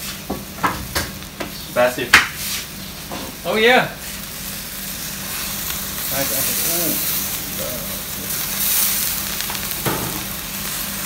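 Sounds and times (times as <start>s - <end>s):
meat sizzling in a wok: 0.0s - 11.0s.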